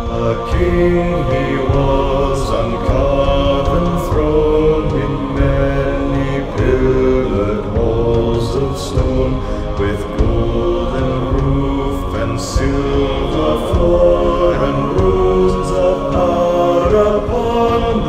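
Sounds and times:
male choir singing in harmony: 0:00.0 - 0:18.0.

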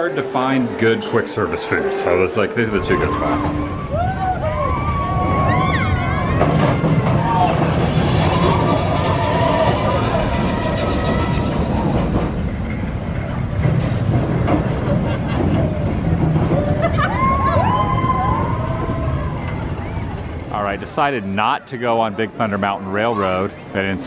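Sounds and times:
roller coaster rumbling and clattering: 0:00.0 - 0:24.0.

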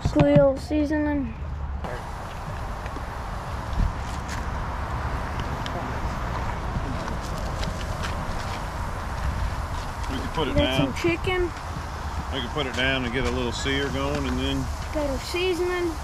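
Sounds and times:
chicken sizzling on a grill: 0:07.4 - 0:16.0.

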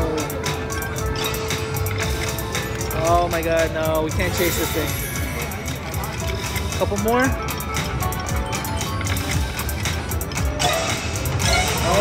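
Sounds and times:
slot machine electronic music: 0:00.0 - 0:12.0
slot machine reels spinning: 0:00.0 - 0:12.0.

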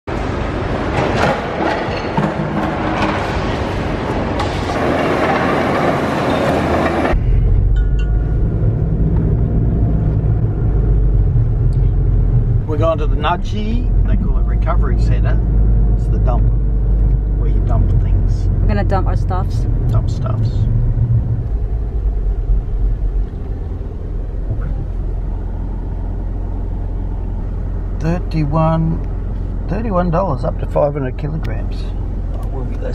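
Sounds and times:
car engine and tyres rumbling: 0:00.0 - 0:32.9.

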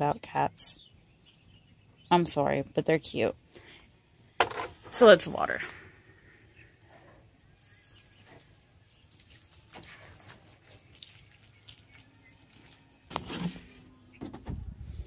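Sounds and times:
water trickling onto soil: 0:07.6 - 0:13.8.

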